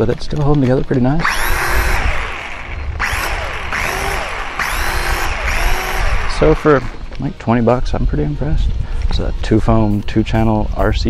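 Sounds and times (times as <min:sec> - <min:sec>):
electric motors and propellers whining: 0:01.1 - 0:07.4.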